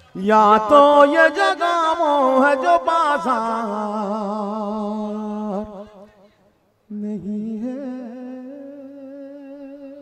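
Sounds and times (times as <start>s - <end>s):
man singing: 0.0s - 6.2s, 6.9s - 10.0s.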